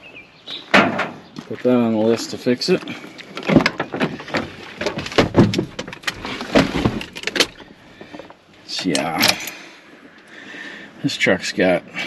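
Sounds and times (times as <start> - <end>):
knocks and thuds of climbing in: 0.7 - 1.5, 2.7 - 8.4.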